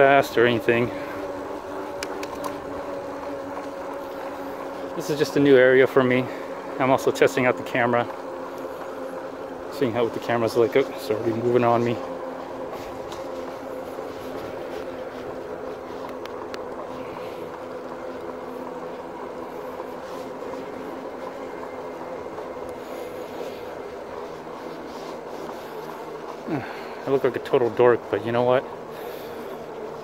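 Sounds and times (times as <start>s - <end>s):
electric bike motor hum: 0.0s - 30.0s
rushing ride noise: 9.7s - 30.0s.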